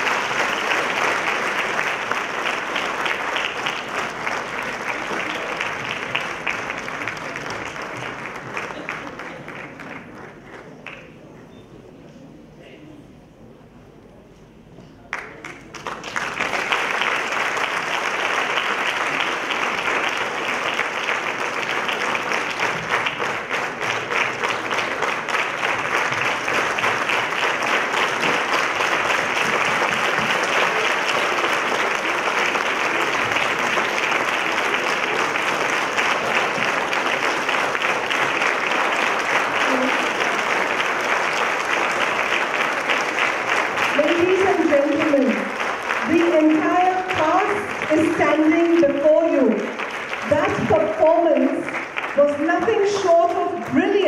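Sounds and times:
large audience applauding: 0:00.0 - 0:11.4, 0:15.1 - 0:54.0.

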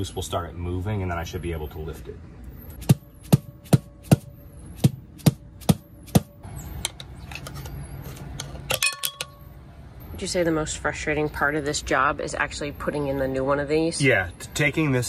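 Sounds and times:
mallet striking steel drift: 0:02.8 - 0:06.4
brake drum ringing: 0:02.8 - 0:09.6.

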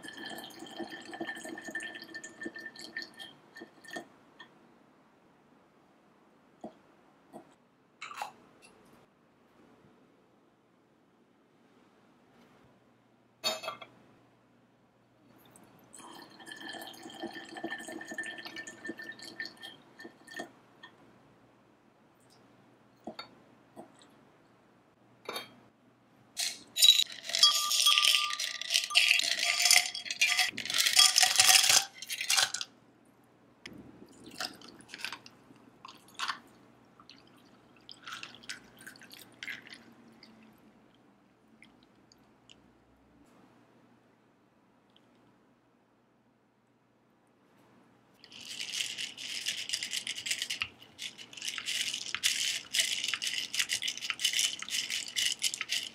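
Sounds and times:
ice cubes clinking into glass: 0:26.4 - 0:32.7, 0:48.3 - 0:55.9
glass ringing: 0:26.8 - 0:30.0.

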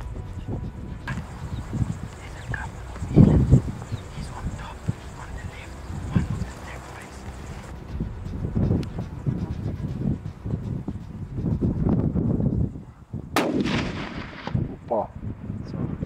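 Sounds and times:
low uneven rumbling: 0:00.0 - 0:16.0
rifle shot with echo: 0:13.4 - 0:15.0.

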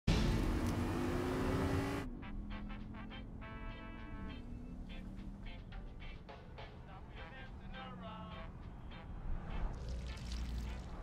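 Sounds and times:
car engine rumble: 0:00.1 - 0:06.3.

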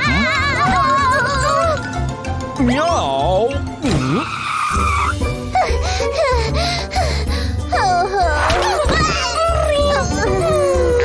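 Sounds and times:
upbeat children's music: 0:00.0 - 0:03.8, 0:05.6 - 0:11.0.

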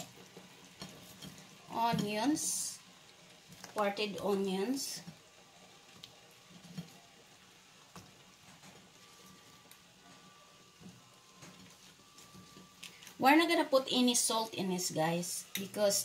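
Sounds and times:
pot of water boiling: 0:00.0 - 0:16.0.

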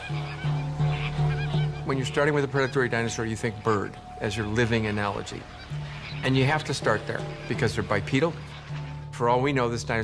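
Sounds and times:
birds honking: 0:00.0 - 0:10.0
music with long held notes: 0:00.0 - 0:10.0.

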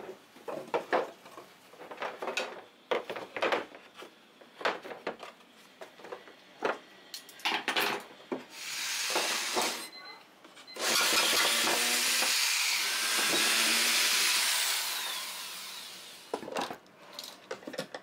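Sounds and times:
cordless drill boring into wood: 0:08.6 - 0:09.8, 0:10.8 - 0:16.3.

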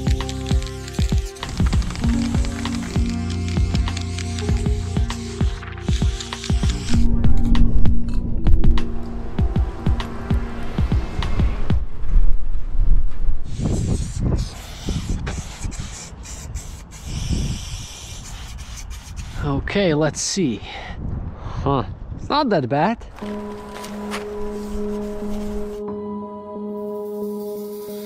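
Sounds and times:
spray-paint cans hissing: 0:00.0 - 0:07.0, 0:13.5 - 0:19.4, 0:23.3 - 0:25.8, 0:27.0 - 0:28.0
music with steady beat: 0:00.0 - 0:11.8.

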